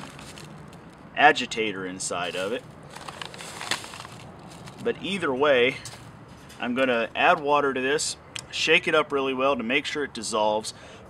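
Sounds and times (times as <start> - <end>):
plastic bag crinkling: 0.0 - 0.8, 2.1 - 4.9.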